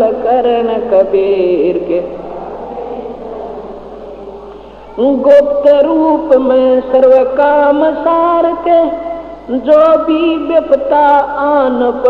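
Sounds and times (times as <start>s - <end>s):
person singing devotional song: 0.0s - 12.0s.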